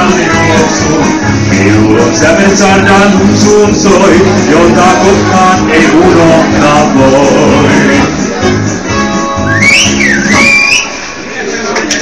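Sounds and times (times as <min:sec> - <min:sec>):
live dance band chord: 0:00.0 - 0:11.3
gliding whistle from crowd: 0:09.4 - 0:11.2.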